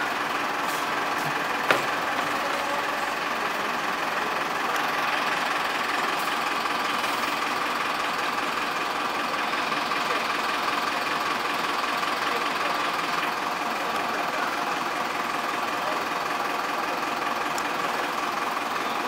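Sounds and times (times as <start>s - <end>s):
bus engine idling: 0.0s - 19.0s.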